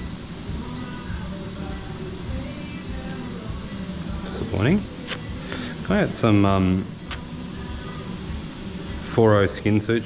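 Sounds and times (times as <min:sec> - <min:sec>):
equipment and ventilation hum: 0:00.0 - 0:10.0.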